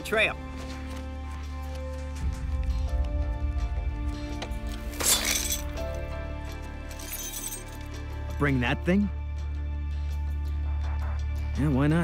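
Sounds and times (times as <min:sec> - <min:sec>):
background music with low drone: 0:00.0 - 0:12.0
metallic chain rattle: 0:04.9 - 0:05.8, 0:06.9 - 0:07.8.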